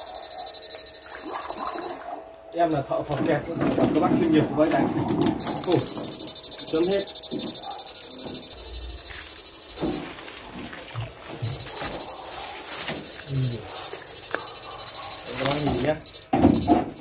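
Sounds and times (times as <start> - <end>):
high-pitched electronic whine: 0.0 - 17.0.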